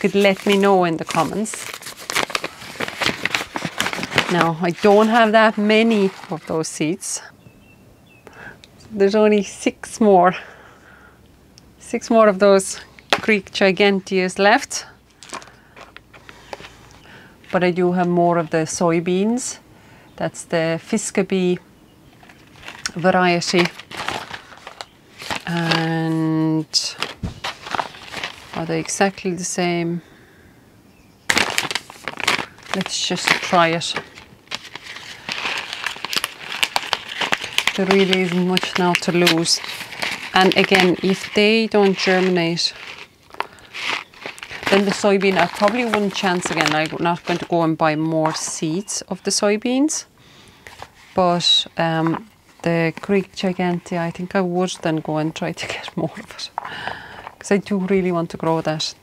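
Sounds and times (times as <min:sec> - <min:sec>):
paper packet crinkling: 0:00.0 - 0:06.7, 0:15.2 - 0:16.8, 0:22.2 - 0:29.0, 0:31.3 - 0:49.3.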